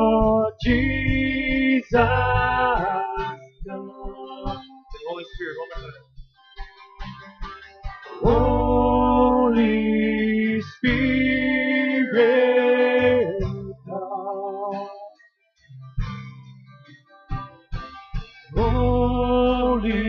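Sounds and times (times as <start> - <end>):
acoustic guitar playing: 0.0 - 20.0.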